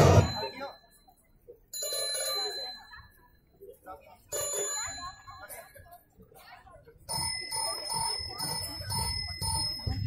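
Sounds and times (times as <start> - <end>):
bell ringing: 0.0 - 1.1.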